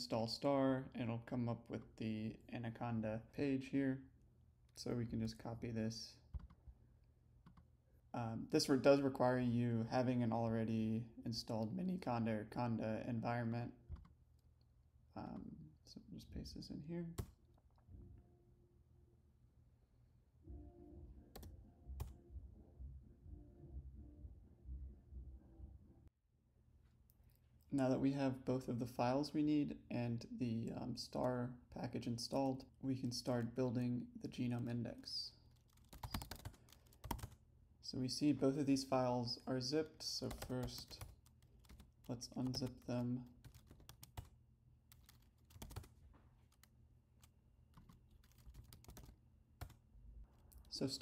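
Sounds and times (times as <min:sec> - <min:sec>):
faint low hum: 0:00.0 - 0:51.0
keyboard keystrokes: 0:47.7 - 0:49.8.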